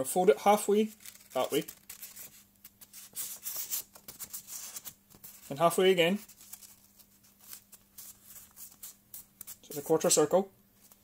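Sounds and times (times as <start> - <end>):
filter paper rustling: 0.7 - 10.2.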